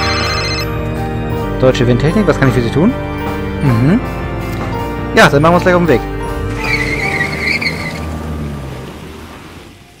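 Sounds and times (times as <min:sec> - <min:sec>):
background music: 0:00.0 - 0:09.3
van pulling away: 0:00.7 - 0:10.0
tyre squeal: 0:06.5 - 0:08.1.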